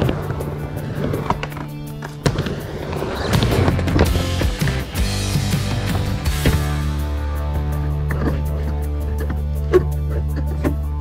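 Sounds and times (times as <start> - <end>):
skateboard wheels rolling: 0.0 - 6.9
background music: 0.0 - 11.0.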